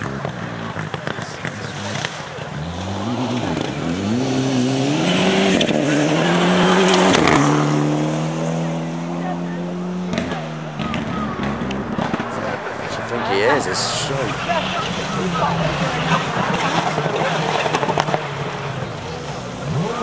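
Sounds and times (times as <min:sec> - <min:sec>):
rally car engine accelerating: 0:00.0 - 0:20.0.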